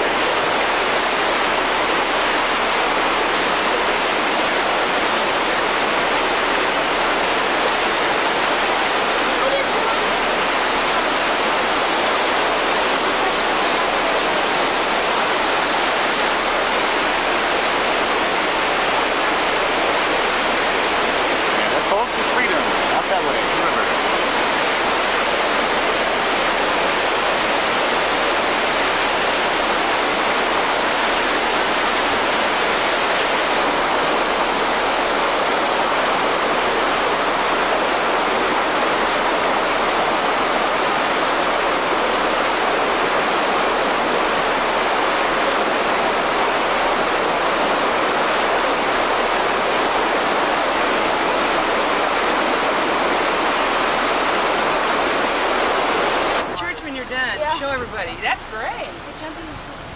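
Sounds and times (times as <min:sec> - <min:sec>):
water spilling down weirs: 0:00.0 - 0:58.4
creek running over rapids: 0:00.0 - 0:59.9.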